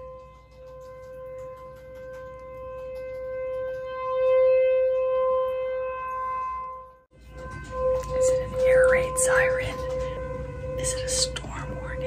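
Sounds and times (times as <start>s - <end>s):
horn blowing long steady note: 0.0s - 12.0s.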